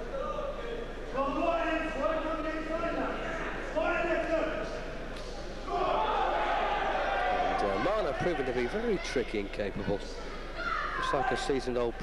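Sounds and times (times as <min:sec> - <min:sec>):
spectators shouting in echoing hall: 0:01.2 - 0:12.0.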